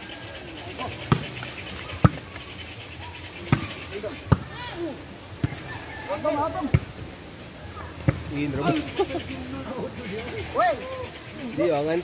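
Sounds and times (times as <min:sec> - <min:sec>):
volleyball slaps: 0:01.0 - 0:02.5, 0:03.4 - 0:04.6, 0:05.4 - 0:05.7.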